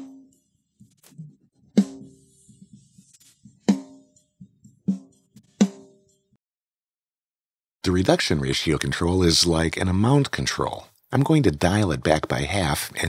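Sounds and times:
faint drum kit bleed: 0.0s - 5.9s.

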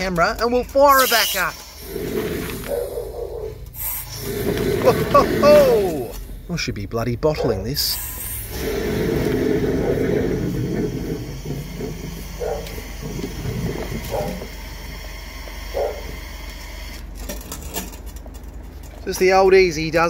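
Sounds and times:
jetter droning: 0.0s - 20.0s
wastewater gushing and splashing: 1.6s - 2.7s, 3.7s - 6.1s, 8.2s - 15.7s.

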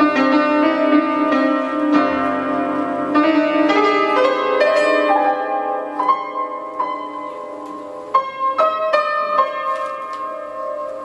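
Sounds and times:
piano notes ringing: 0.0s - 11.0s.

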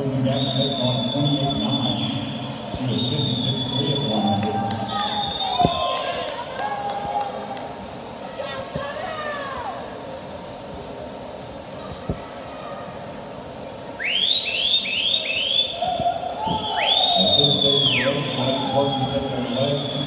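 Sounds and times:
crowd noise in pool hall: 0.0s - 20.0s
high rising whistle chirps: 14.0s - 20.0s.

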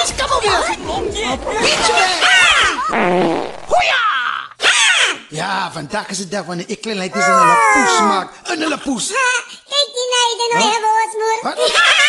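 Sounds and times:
buzzy fart sounds: 2.6s - 3.8s.

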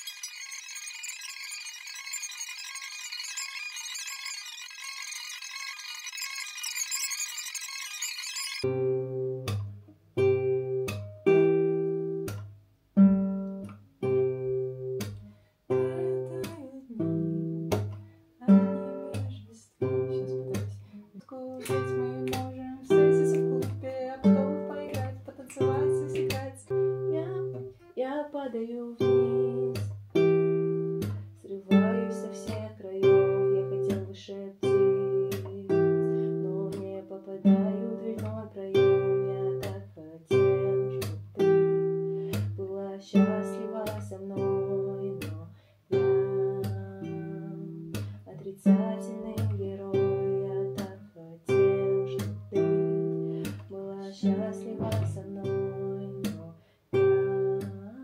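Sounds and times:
high shimmering sound: 0.0s - 8.7s
acoustic guitar strumming: 8.6s - 21.0s, 21.6s - 27.8s, 29.0s - 50.9s, 51.5s - 56.4s.

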